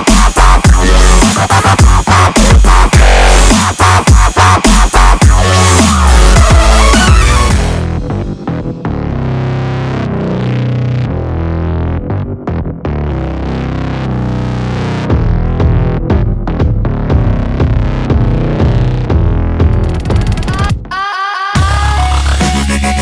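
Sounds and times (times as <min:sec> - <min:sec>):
electronic dance music: 0:00.0 - 0:11.0, 0:13.4 - 0:23.0.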